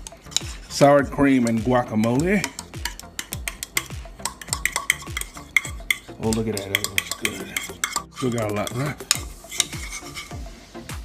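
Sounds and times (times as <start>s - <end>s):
fork scraping a plastic bowl: 0.0s - 0.8s, 2.4s - 10.4s.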